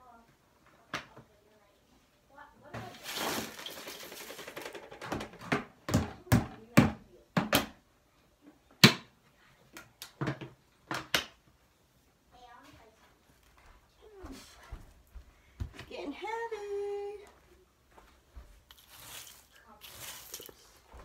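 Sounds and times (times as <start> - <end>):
plastic tote rattling: 2.9 - 5.5.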